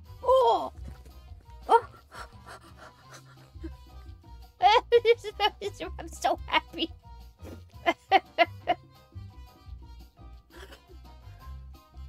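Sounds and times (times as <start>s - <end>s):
woman's breathy laughter: 2.0s - 3.9s, 10.5s - 10.9s.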